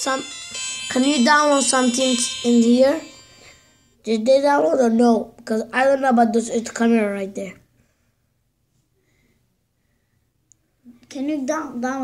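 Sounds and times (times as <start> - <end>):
faint high touch tones: 0.0 - 4.0.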